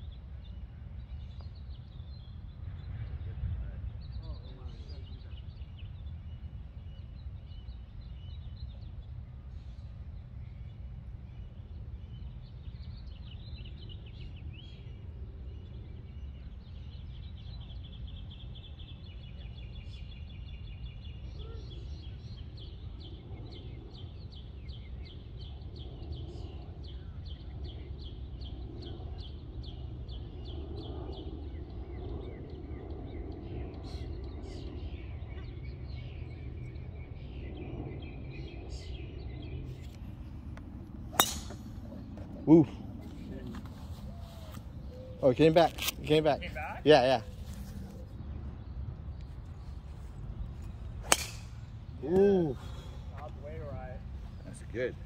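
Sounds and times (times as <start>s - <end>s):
golf club striking ball: 41.1s - 42.0s, 51.0s - 51.9s.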